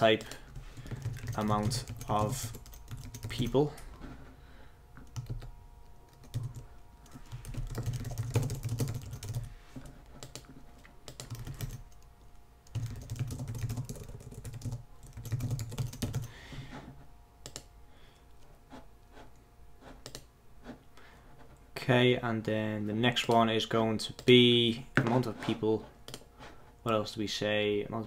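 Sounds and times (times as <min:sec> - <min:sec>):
typing on computer keyboard: 0:00.2 - 0:03.5, 0:05.0 - 0:05.5, 0:06.1 - 0:09.5, 0:11.1 - 0:11.9, 0:12.7 - 0:16.3.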